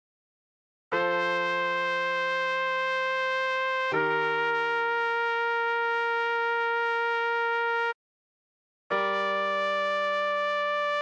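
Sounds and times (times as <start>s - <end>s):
electronic trumpet long note: 1.0s - 8.0s, 8.9s - 11.0s.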